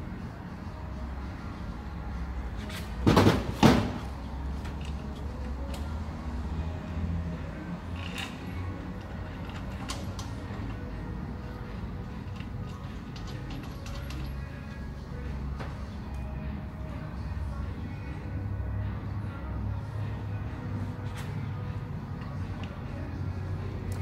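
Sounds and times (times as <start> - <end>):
bolts and tools clinking: 7.8 - 14.5
metal hardware clattering: 12.2 - 14.4.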